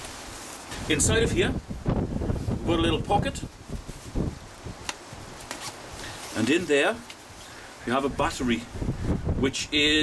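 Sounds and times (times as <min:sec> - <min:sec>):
nylon jacket rustling: 0:00.0 - 0:07.8.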